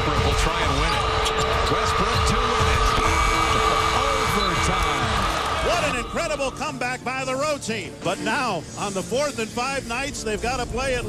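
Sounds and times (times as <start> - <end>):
arena crowd noise: 0.0 - 7.1.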